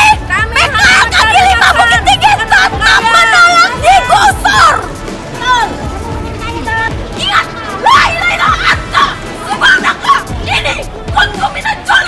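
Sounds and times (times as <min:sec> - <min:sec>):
woman shouting: 0:00.0 - 0:05.8, 0:06.4 - 0:12.0
crowd babble: 0:00.0 - 0:12.0.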